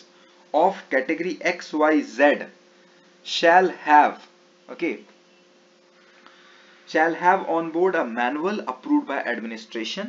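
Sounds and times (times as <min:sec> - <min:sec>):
faint electrical hum: 0:00.0 - 0:10.0
low hiss: 0:00.0 - 0:10.0
man's voice: 0:06.9 - 0:10.0.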